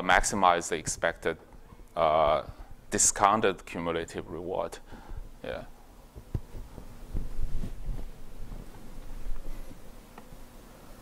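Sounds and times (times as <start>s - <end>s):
low electrical hum: 0.0s - 11.0s
footsteps on floor: 6.1s - 10.3s.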